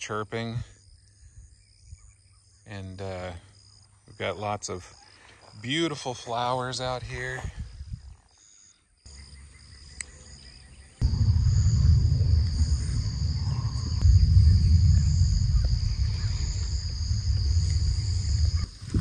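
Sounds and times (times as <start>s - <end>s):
insects chirring: 0.0s - 19.0s
wind rumble on microphone: 7.0s - 8.2s, 11.0s - 19.0s.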